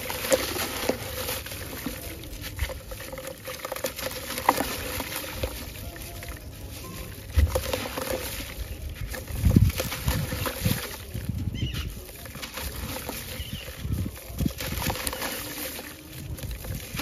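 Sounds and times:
water dribbling and splashing: 0:00.0 - 0:17.0
wet sand crumbling by hand: 0:00.0 - 0:17.0.

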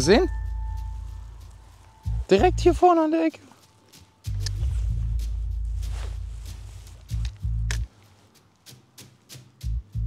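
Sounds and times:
deep bass note: 0:00.0 - 0:02.8, 0:04.3 - 0:07.8
light percussion: 0:00.0 - 0:10.0.

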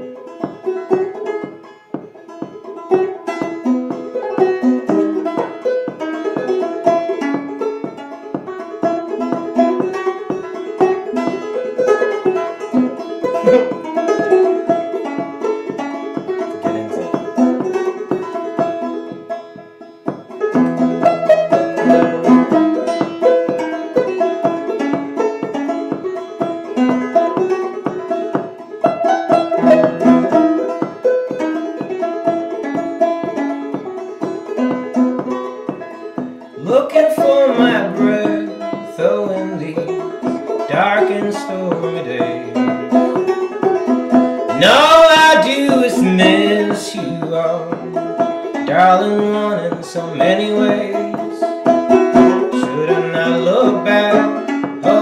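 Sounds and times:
banjo plucked notes: 0:00.0 - 0:55.0.

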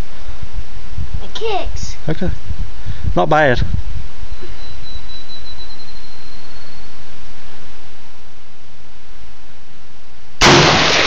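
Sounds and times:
outdoor background noise: 0:00.0 - 0:11.0
rifle shot: 0:10.4 - 0:11.0.

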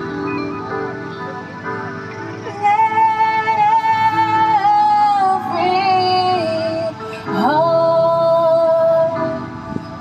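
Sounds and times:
backing music: 0:00.0 - 0:10.0
woman singing through speaker: 0:02.2 - 0:10.0.

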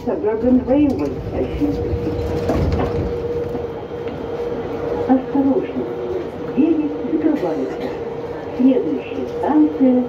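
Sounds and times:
metro train humming: 0:00.0 - 0:10.0.

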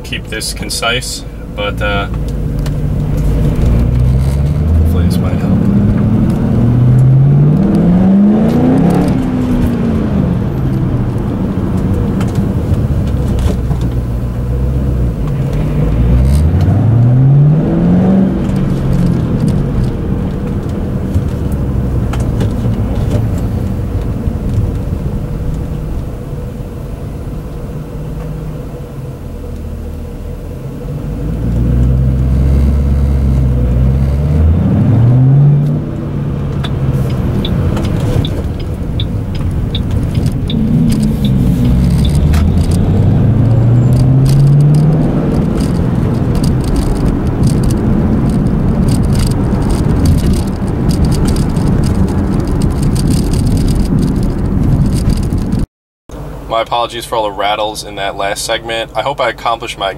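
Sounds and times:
car engine idling low: 0:00.0 - 0:07.0
car interior rattles: 0:00.0 - 0:26.5, 0:31.6 - 0:55.6
car engine accelerating: 0:00.0 - 0:59.9.

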